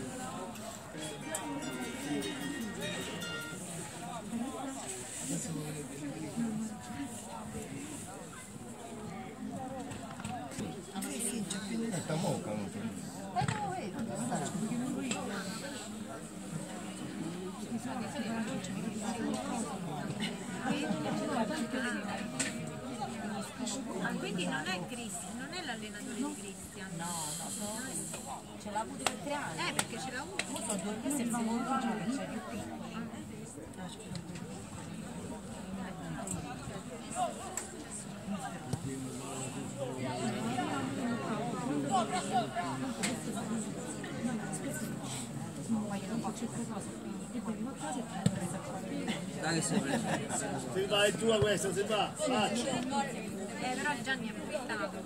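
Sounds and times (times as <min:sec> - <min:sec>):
spectators chattering: 0:00.0 - 0:55.0.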